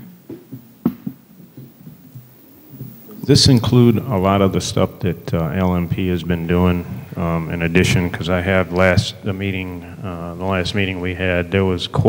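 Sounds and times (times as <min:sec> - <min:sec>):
microphone handling thumps: 0:00.0 - 0:03.8.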